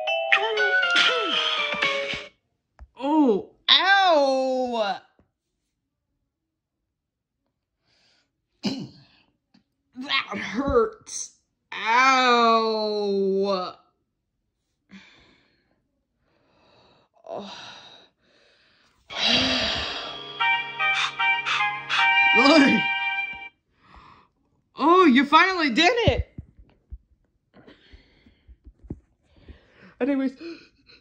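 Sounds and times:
cartoon music with held notes: 0.0s - 2.3s, 19.1s - 23.5s
breathy intake: 17.4s - 22.2s.

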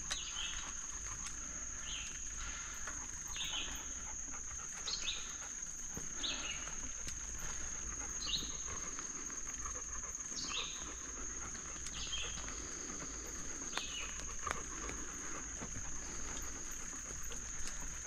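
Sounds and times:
songbird call notes: 1.8s - 4.0s, 11.9s - 14.2s.

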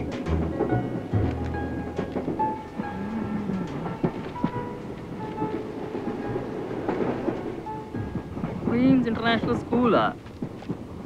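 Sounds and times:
clicks and knocks of train: 0.0s - 11.0s
train rumble from inside carriage: 0.0s - 11.0s.

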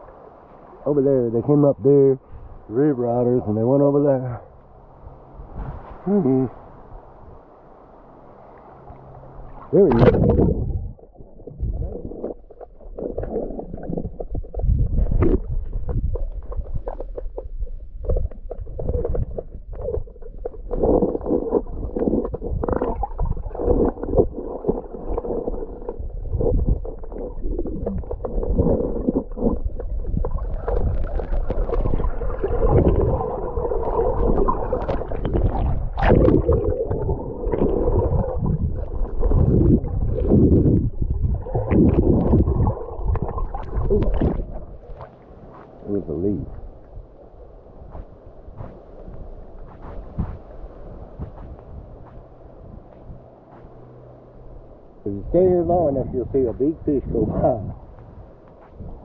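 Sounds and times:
underwater river gurgle: 0.0s - 59.0s.

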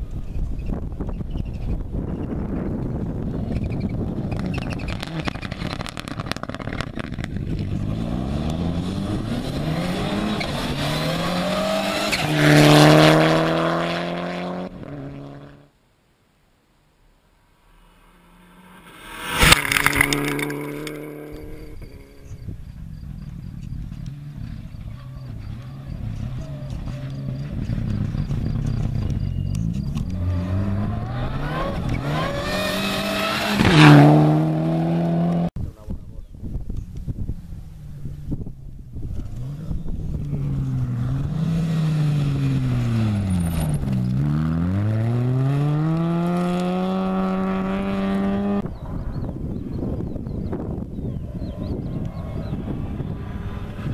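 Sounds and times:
rally car engine accelerating: 3.4s - 15.6s, 18.0s - 35.5s, 38.0s - 49.3s, 50.0s - 53.9s.

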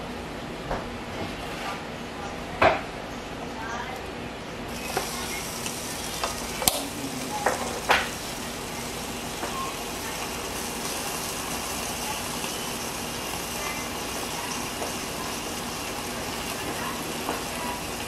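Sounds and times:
sandwich sizzling on grill: 4.7s - 18.0s.

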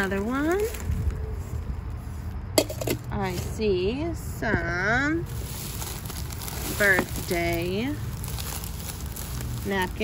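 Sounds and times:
metal cup being moved: 2.6s - 3.1s
plastic bags rustling: 5.2s - 10.0s.

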